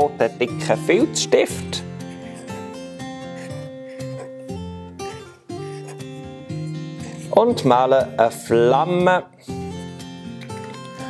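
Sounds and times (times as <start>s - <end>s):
strummed acoustic guitar chords: 0.0s - 11.0s.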